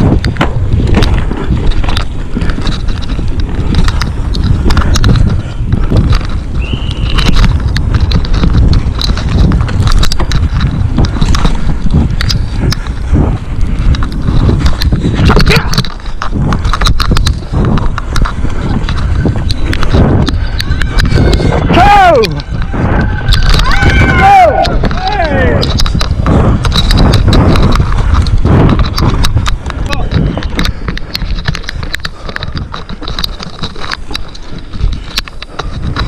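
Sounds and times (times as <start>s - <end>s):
bike chain and frame rattling: 0.0s - 36.0s
wind rumble on microphone: 0.0s - 36.0s.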